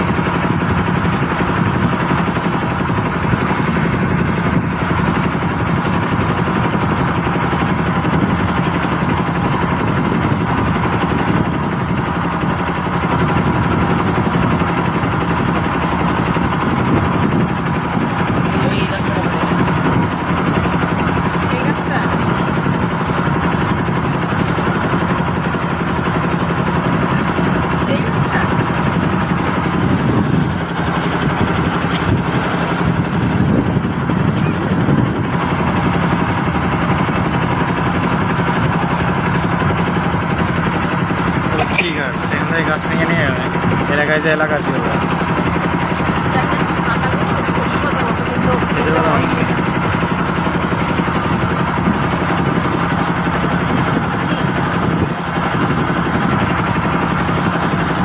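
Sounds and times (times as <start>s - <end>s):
motor boat engine droning: 0.0s - 58.0s.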